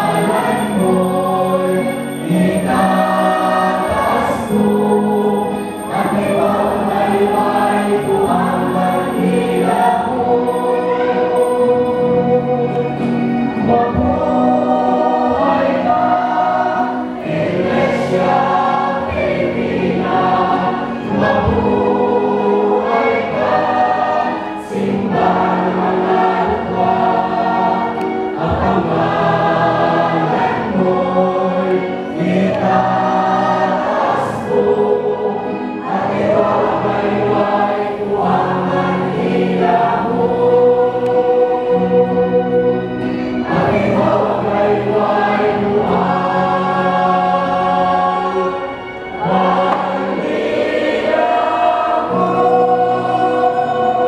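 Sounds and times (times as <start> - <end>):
church choir singing: 0.0 - 54.0.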